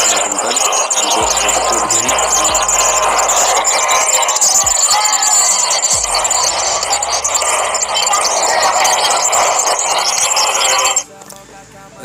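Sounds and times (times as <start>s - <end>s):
noisy video soundtrack from phone: 0.0s - 12.0s.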